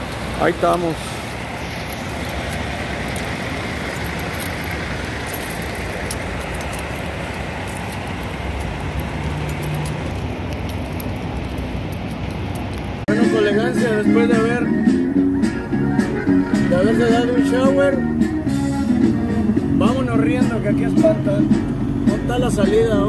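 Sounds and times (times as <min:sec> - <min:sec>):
truck engines running: 0:00.0 - 0:23.0.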